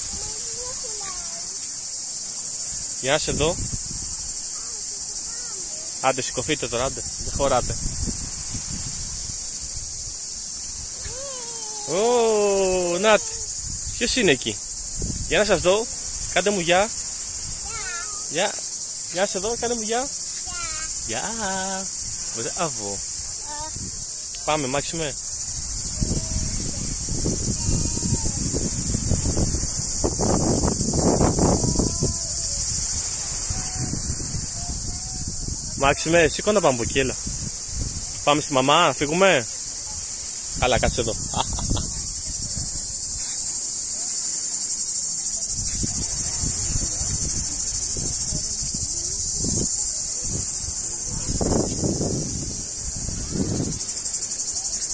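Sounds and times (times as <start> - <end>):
cicadas buzzing: 0.0 - 54.9
insects singing: 0.0 - 54.9
held vocal sound: 11.0 - 13.5
faint voices chatter: 39.4 - 54.9.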